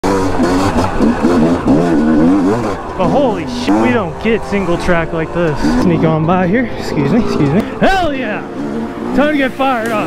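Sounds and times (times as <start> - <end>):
two-stroke motorcycle engine revving: 0.0 - 10.0.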